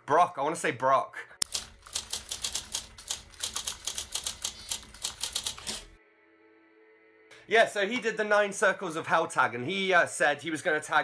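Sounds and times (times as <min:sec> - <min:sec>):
typewriter keystroke clicks: 0:01.4 - 0:05.9.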